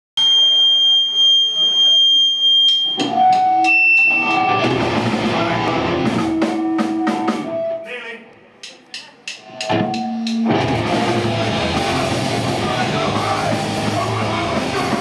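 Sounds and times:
live rock band playing: 2.9s - 7.9s, 9.4s - 15.0s.

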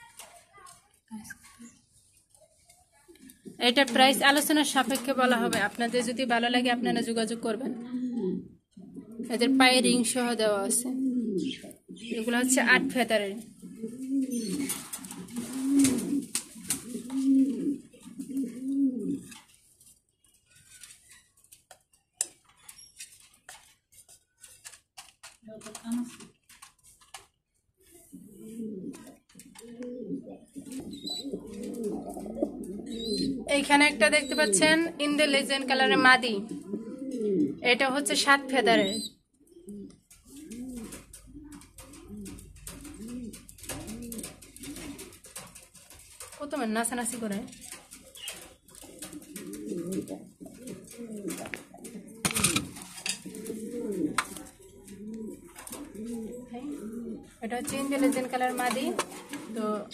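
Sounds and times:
pigeons cooing: 3.1s - 19.6s, 27.8s - 59.9s.

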